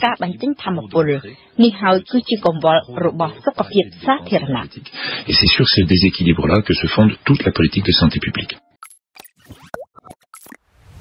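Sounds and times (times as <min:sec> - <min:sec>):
whoosh: 0:10.7 - 0:11.0.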